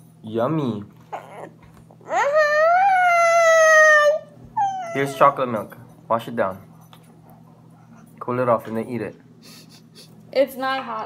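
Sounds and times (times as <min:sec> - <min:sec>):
girl's high whining cry: 0:02.1 - 0:05.2.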